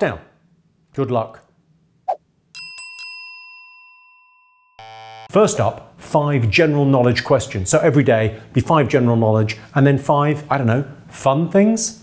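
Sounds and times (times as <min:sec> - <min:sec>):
bell-like ding: 0:02.6 - 0:05.0
low buzzy tone: 0:04.8 - 0:05.3.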